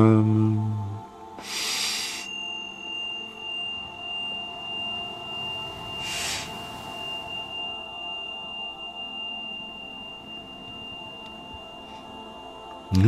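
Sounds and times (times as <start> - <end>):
ambient meditation music: 0.0 - 13.0
high steady tone: 0.0 - 13.0
short breathy hisses: 1.4 - 2.3.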